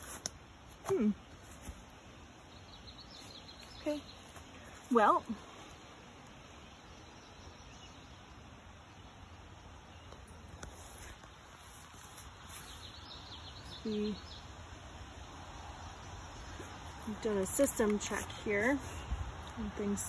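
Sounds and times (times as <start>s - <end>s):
low outdoor background noise: 0.0s - 20.0s
faint high bird chirps: 12.5s - 14.5s.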